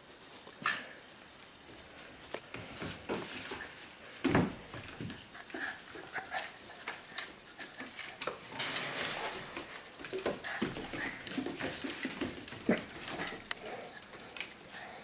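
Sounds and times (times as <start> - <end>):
claws clicking on tile floor: 4.7 - 14.9.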